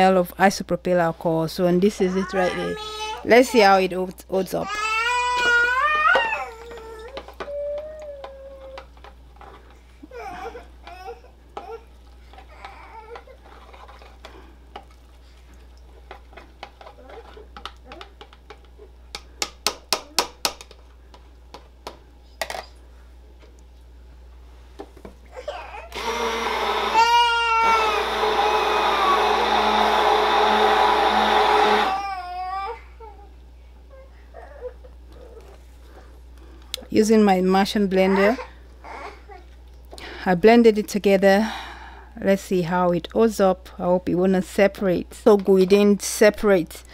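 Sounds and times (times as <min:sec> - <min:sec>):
child crying out: 0:02.1 - 0:03.2, 0:04.6 - 0:08.8, 0:26.6 - 0:29.7, 0:31.6 - 0:32.9
stick blender running: 0:25.9 - 0:32.2.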